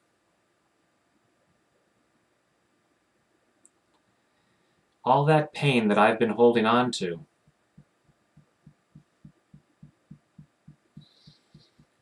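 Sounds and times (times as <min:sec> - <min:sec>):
fingertips tapping on chest: 0:07.4 - 0:12.0.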